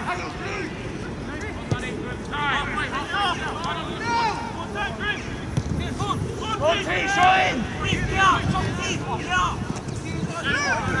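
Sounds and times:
footballers shouting: 0:00.0 - 0:11.0
wind rumble on microphone: 0:05.6 - 0:11.0.

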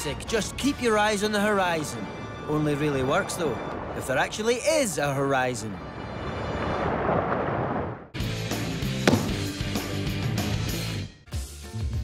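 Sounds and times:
sharp booming hit: 0:09.0 - 0:09.6.

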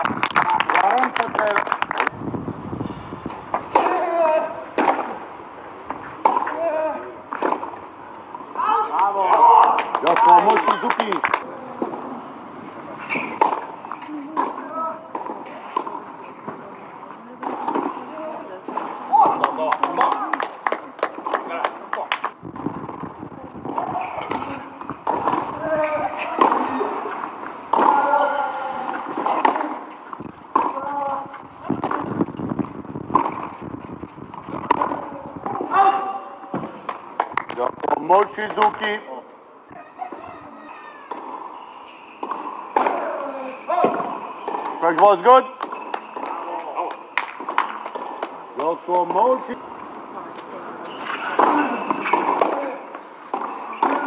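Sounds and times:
tennis balls struck by racquets: 0:03.3 - 0:12.0, 0:13.0 - 0:16.6, 0:17.4 - 0:35.8, 0:36.5 - 0:39.0, 0:41.1 - 0:49.6, 0:50.4 - 0:54.0.

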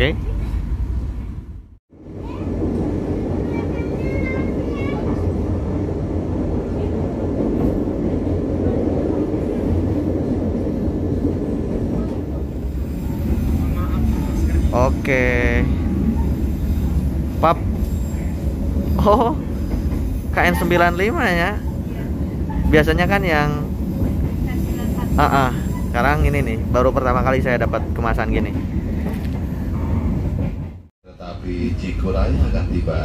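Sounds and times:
train wheels rumbling on track: 0:00.0 - 0:33.0.

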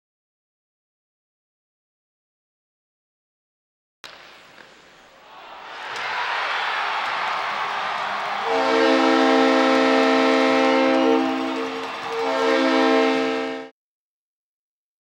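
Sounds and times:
arena crowd cheering: 0:05.1 - 0:13.7
goal horn blaring: 0:08.4 - 0:13.7.

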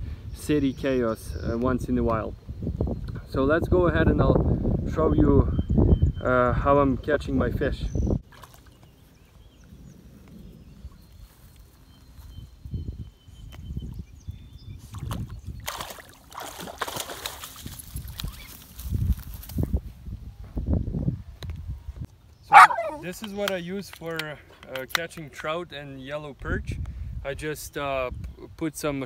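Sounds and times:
dog splashing through water: 0:14.9 - 0:18.5.

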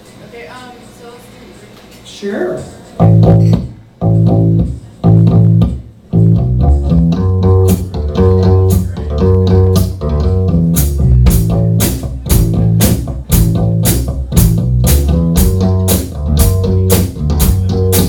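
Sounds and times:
live rock band playing: 0:03.0 - 0:18.0.

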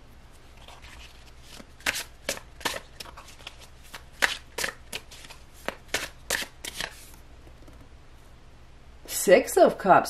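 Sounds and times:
cards being shuffled: 0:00.3 - 0:07.9.

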